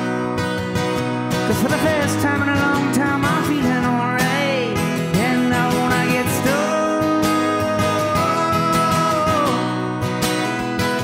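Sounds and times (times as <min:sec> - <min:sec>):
acoustic guitar strumming: 0:00.0 - 0:11.0
man singing with raspy voice: 0:01.4 - 0:10.2.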